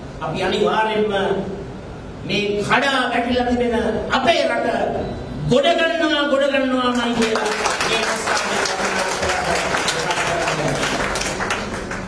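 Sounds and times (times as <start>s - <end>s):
audience applauding: 7.2s - 12.0s.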